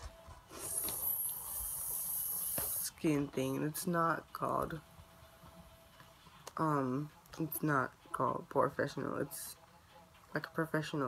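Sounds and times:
high-pitched hiss: 0.6 - 2.9.

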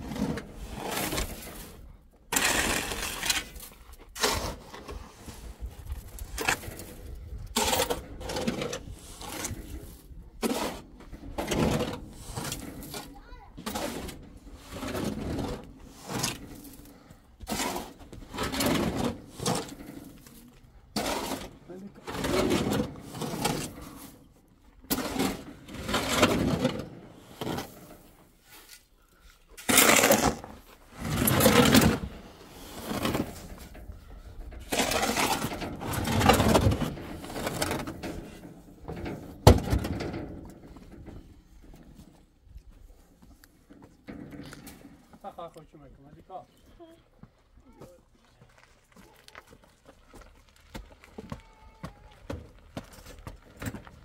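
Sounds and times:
shovel scraping sand on metal: 0.0 - 24.3, 24.9 - 33.8, 34.6 - 39.0
sand tipping into wheelbarrow: 17.4 - 24.2, 29.6 - 33.7.

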